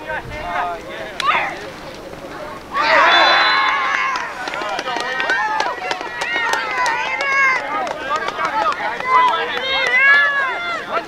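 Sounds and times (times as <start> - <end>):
voices shouting over one another: 2.7 - 4.6.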